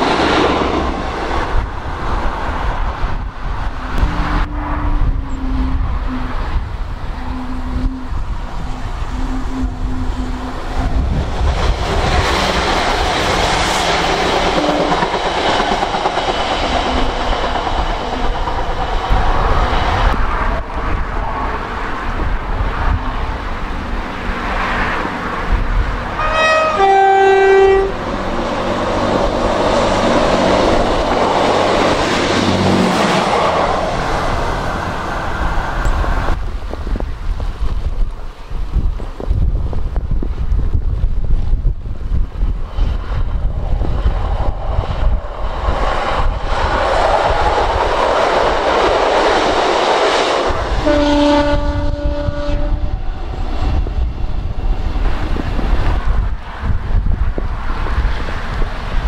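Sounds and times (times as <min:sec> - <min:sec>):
train engine and wheel noise: 0:00.0 - 0:59.0
two-tone train horn: 0:03.8 - 0:11.0, 0:14.5 - 0:15.1, 0:26.2 - 0:28.1, 0:50.8 - 0:53.0.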